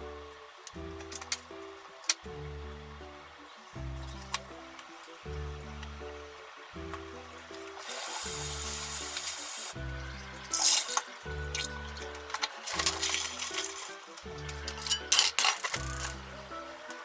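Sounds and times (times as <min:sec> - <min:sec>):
background music with bass line: 0:00.0 - 0:17.0
water splash: 0:07.6 - 0:14.5
kitchen tap running: 0:07.6 - 0:16.2.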